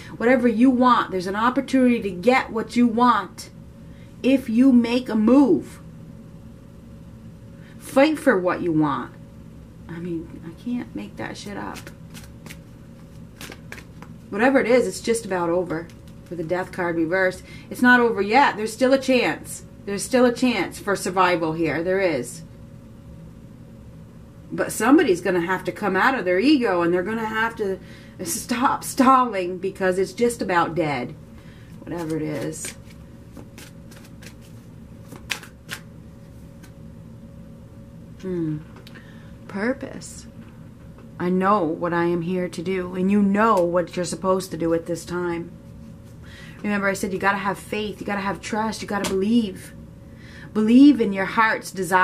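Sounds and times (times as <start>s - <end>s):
cards being shuffled: 11.5s - 14.3s, 15.7s - 16.4s, 31.8s - 36.8s
card snaps and slides: 11.7s - 14.1s, 32.0s - 35.9s.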